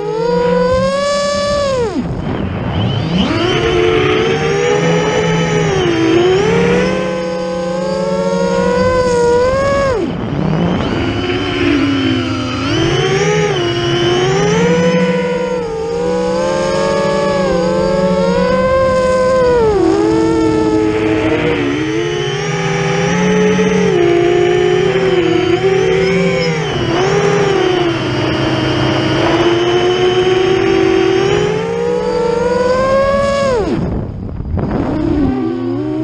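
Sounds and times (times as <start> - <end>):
drone motors whining: 0.0 - 36.0.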